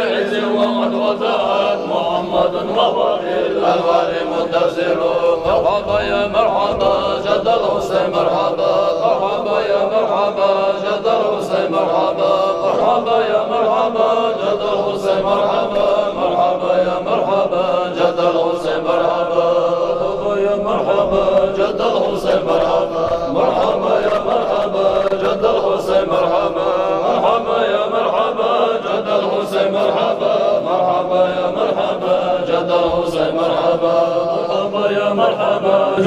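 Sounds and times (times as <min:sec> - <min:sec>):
men chanting a hymn: 0:00.0 - 0:36.0.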